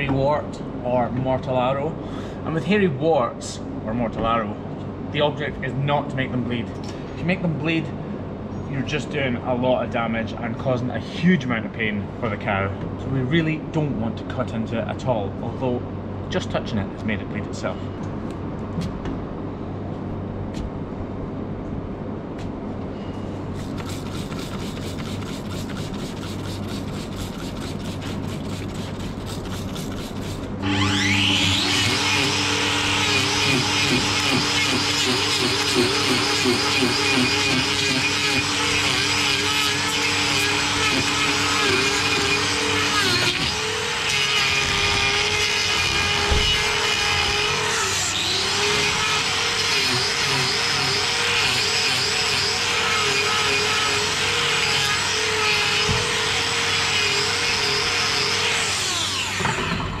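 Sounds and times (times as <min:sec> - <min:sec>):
angle grinder grinding hoof: 0:23.5 - 1:00.0.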